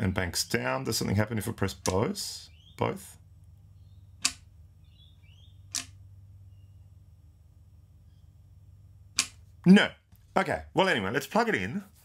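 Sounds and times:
faint low hum: 0.0s - 12.0s
pedal footswitch clicks: 4.2s - 4.5s.

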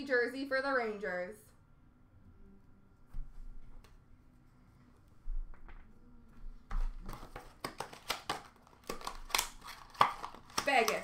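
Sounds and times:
cards and plastic sleeves handled: 6.8s - 11.0s.

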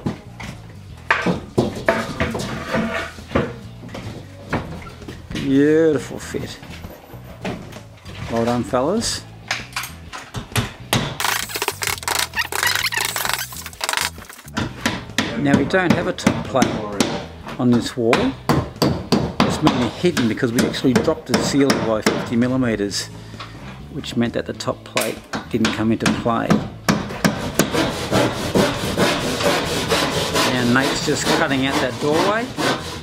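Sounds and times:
quiet background music: 0.0s - 33.0s
hand tool scraping plasterboard: 1.9s - 3.2s, 11.2s - 14.6s, 27.3s - 33.0s.

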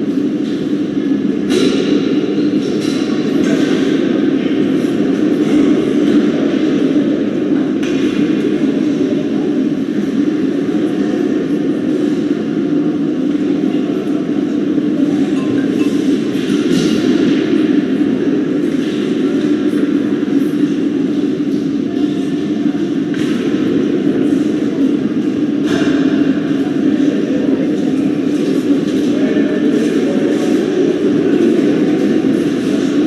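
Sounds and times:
droning ice rink hall noise: 0.0s - 33.0s.

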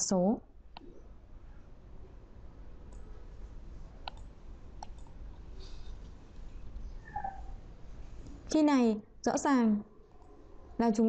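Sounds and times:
low steady hum: 0.0s - 11.0s
computer mouse clicks: 2.9s - 3.1s, 4.0s - 5.2s.

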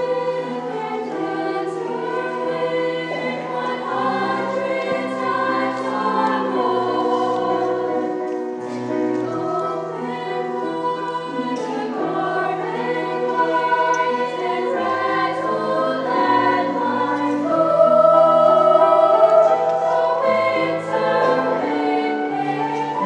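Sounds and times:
women's choir singing chords: 0.0s - 23.0s.

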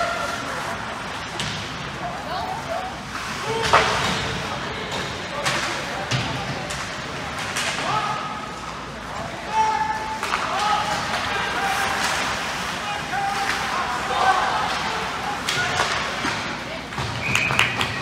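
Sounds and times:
people calling out: 9.4s - 16.0s.

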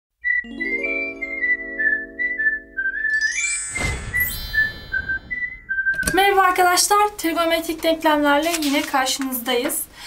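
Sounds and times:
whistled melody over held chord: 0.2s - 6.1s
rising whoosh: 1.2s - 6.1s.

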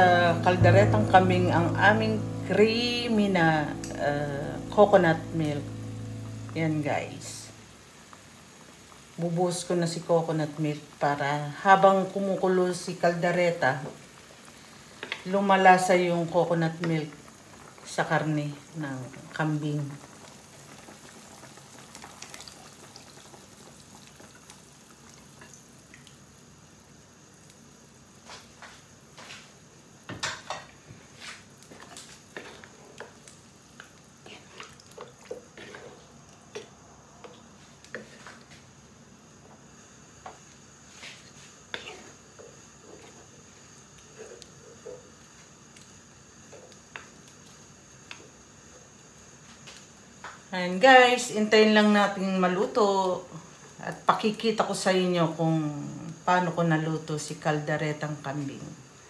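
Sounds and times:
stew bubbling in a pan: 7.6s - 59.0s.

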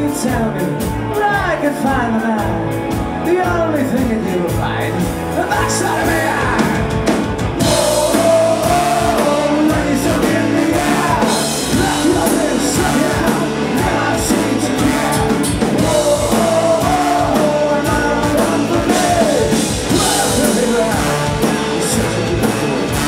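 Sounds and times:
bass guitar: 0.0s - 23.0s
drum kit: 0.0s - 23.0s
electric guitars: 0.0s - 23.0s
sung vocals: 0.0s - 23.0s
trombone and saxophone horns: 7.5s - 23.0s.

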